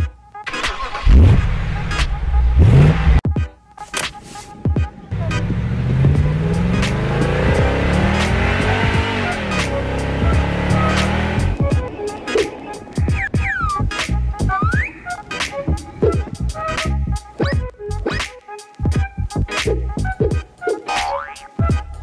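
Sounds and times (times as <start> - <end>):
background music: 0.0 - 22.0
car engine revving: 0.7 - 3.2, 5.1 - 11.7.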